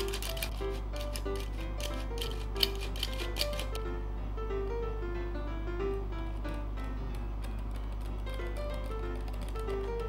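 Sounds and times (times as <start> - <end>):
flour sifter clicking and rasping: 0.0 - 3.8
light background music: 0.0 - 10.0.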